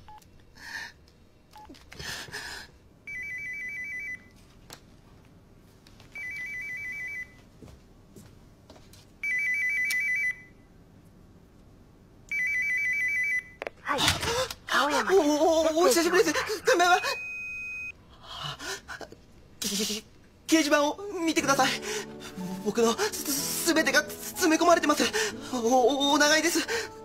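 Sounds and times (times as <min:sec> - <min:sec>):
telephone ringing: 0:03.1 - 0:04.3, 0:06.2 - 0:07.4, 0:09.2 - 0:10.5, 0:12.3 - 0:13.6.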